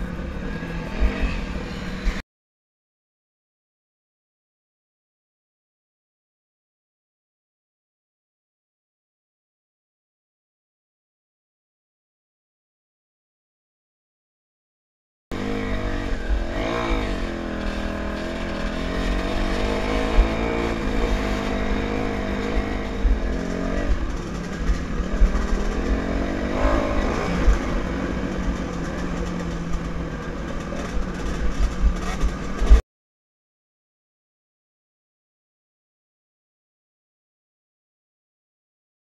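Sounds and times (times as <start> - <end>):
dirt bike engine revving: 0.0 - 2.2, 15.3 - 32.8.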